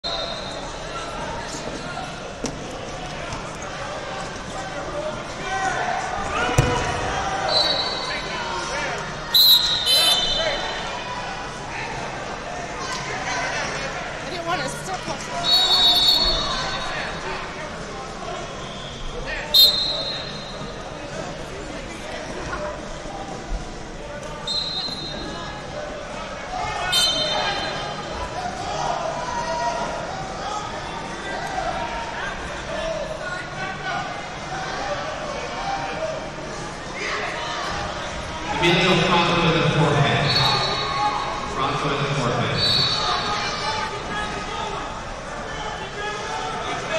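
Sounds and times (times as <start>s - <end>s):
murmur of voices echoing: 0.0s - 46.9s
referee whistle blast: 9.4s - 10.6s, 15.4s - 16.6s, 19.6s - 20.6s, 26.9s - 27.8s, 40.2s - 41.0s, 42.6s - 43.3s.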